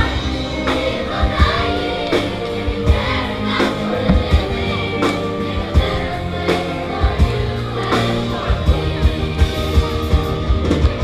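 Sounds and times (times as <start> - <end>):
orchestra and choir performing: 0.0 - 11.0
drum hits: 4.0 - 5.0.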